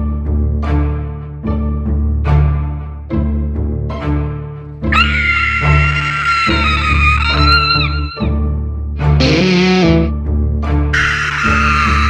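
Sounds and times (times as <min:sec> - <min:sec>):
low bass notes: 0:09.0 - 0:10.4
high held wavering note: 0:09.2 - 0:10.1.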